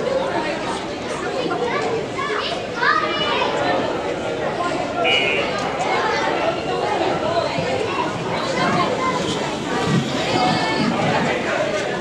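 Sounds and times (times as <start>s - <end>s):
young voices talking: 0.0s - 12.0s.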